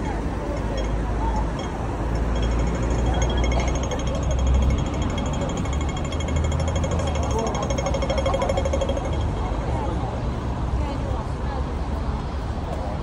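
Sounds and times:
crossing signal ticking: 0:00.0 - 0:09.9
city traffic rumble: 0:00.0 - 0:13.0.

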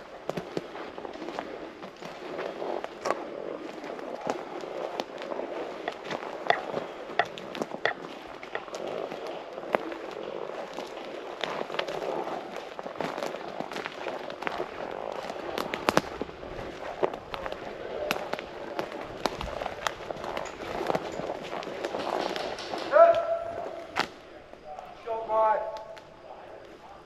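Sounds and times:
clothing and gear rustling: 0:00.0 - 0:24.8
footsteps crunching on forest floor: 0:00.0 - 0:26.7
twigs snapping: 0:13.0 - 0:24.2.

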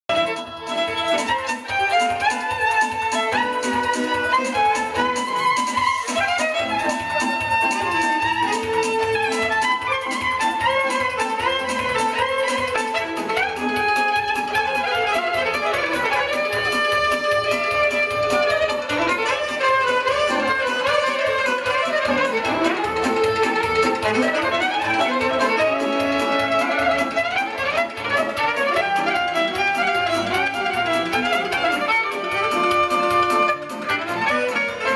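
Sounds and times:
saxophone melody: 0:00.1 - 0:34.9
violin melody: 0:00.1 - 0:34.9
low steady beat: 0:00.2 - 0:34.0.

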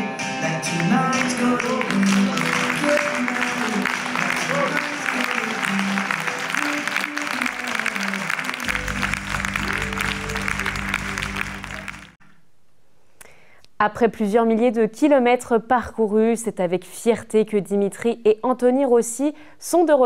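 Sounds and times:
music playing: 0:00.0 - 0:12.2
audience applauding: 0:00.8 - 0:12.2.

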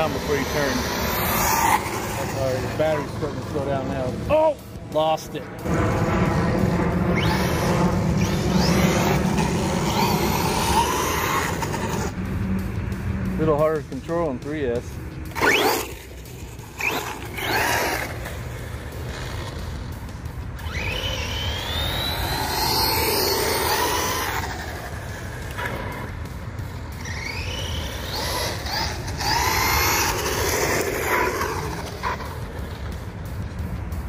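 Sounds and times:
electric motor whining: 0:00.0 - 0:04.2, 0:05.6 - 0:12.6, 0:15.3 - 0:19.8, 0:20.4 - 0:33.0.

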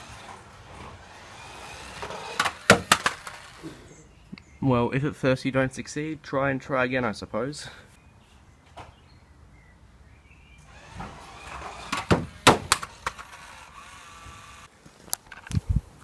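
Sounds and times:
toy car electric motor whirring: 0:00.0 - 0:03.8, 0:10.6 - 0:14.7
plastic clatters: 0:01.9 - 0:03.6, 0:11.4 - 0:13.5.

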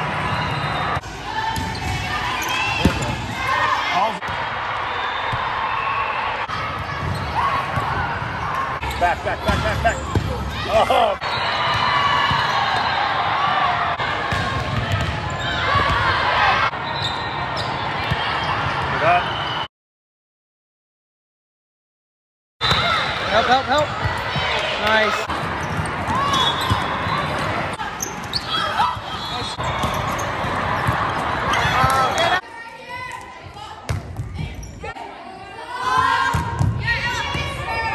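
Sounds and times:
players' voices in a hall: 0:00.0 - 0:19.7, 0:22.6 - 0:37.9.

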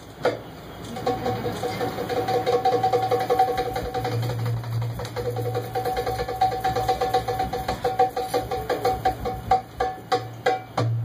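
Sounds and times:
hand drums: 0:01.0 - 0:11.0.

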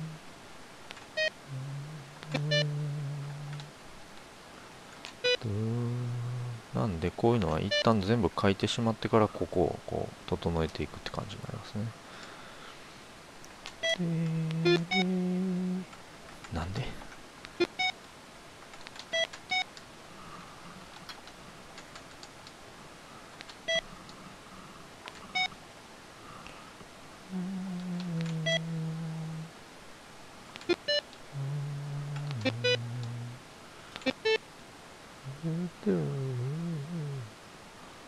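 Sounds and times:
low tones stepping down in pitch: 0:01.4 - 0:03.7, 0:05.4 - 0:06.7, 0:14.0 - 0:15.9, 0:27.3 - 0:29.5, 0:31.3 - 0:33.4, 0:35.2 - 0:37.3.

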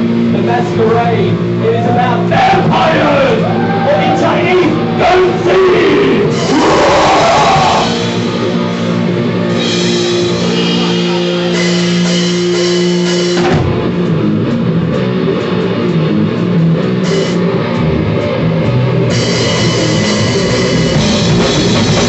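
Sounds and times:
rock band playing: 0:00.0 - 0:22.0.

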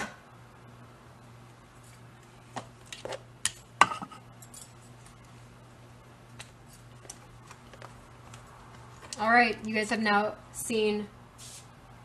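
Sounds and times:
metal tools clicking and clinking: 0:04.4 - 0:04.9.

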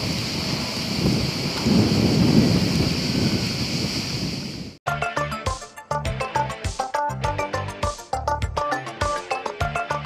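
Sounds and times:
rushing hiss: 0:00.0 - 0:04.8.

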